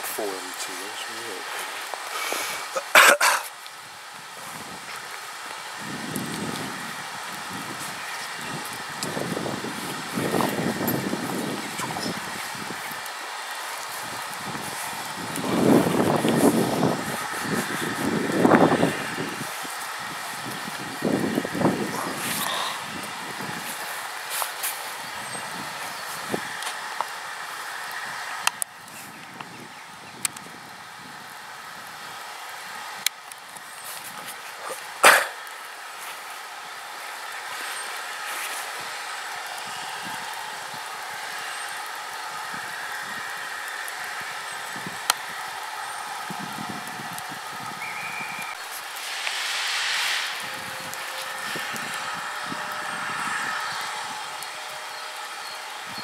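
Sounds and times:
steam locomotive exhaust blasts: 4.0 - 29.0, 36.7 - 56.0.

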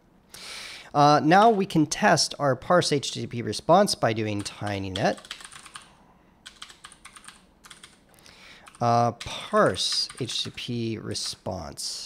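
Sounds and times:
typing on a computer keyboard: 4.4 - 8.0, 8.6 - 11.4.

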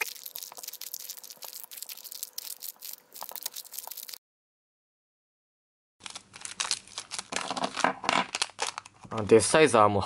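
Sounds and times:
plastic wrapper crinkling: 0.0 - 4.2, 6.0 - 9.2.

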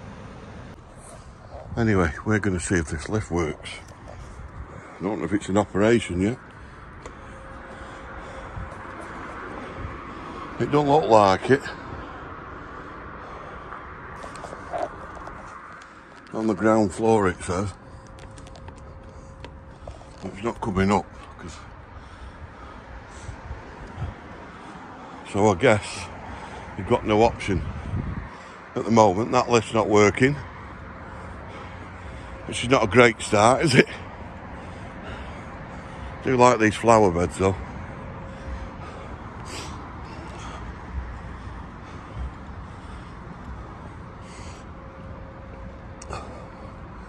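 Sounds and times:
distant town traffic: 0.0 - 47.0
wind rumble on microphone: 0.8 - 5.0, 7.8 - 10.7, 17.7 - 24.5, 26.7 - 28.4.

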